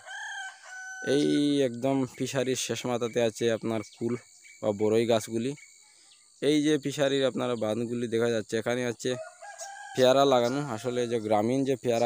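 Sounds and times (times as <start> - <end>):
rooster crowing faintly: 0.0 - 1.6
man talking: 1.0 - 5.6, 6.4 - 9.2, 10.0 - 12.0.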